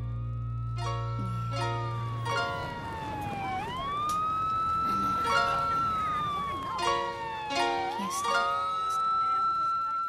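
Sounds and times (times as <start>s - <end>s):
siren-like wailing tone: 0.0s - 10.0s
plucked notes: 0.8s - 4.1s.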